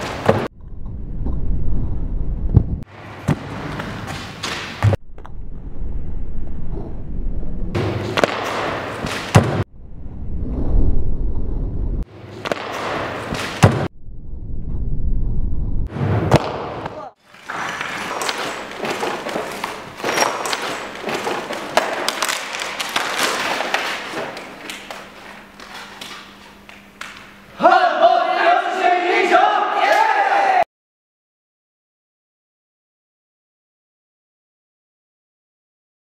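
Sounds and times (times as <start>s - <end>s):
low rumble: 0.6s - 2.8s, 5.0s - 7.8s, 9.7s - 12.0s, 13.9s - 15.9s.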